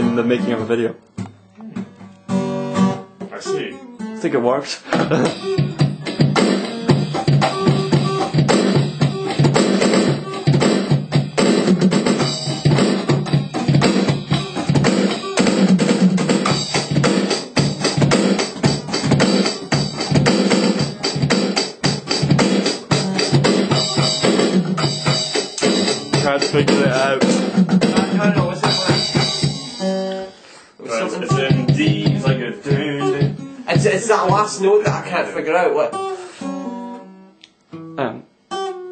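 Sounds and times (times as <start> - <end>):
acoustic guitar: 0.0 - 38.9
drum kit playing a beat: 4.8 - 36.6.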